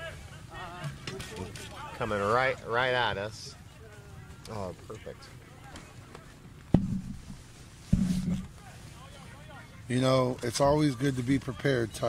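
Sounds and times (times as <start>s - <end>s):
thumps on microphone: 6.7s - 8.5s
commentary speech: 8.5s - 12.0s.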